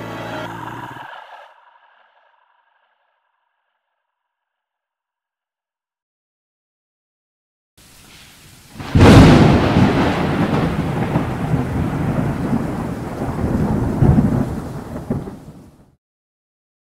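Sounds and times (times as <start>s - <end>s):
faint rain hiss: 7.8s - 15.7s
thunder rumbling: 8.6s - 15.9s.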